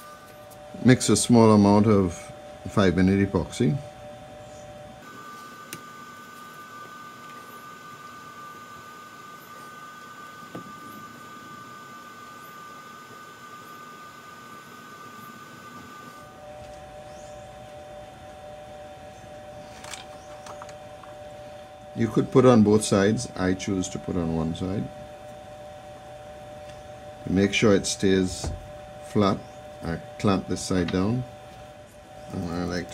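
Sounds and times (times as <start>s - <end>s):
faint steady hum: 0.0s - 32.9s.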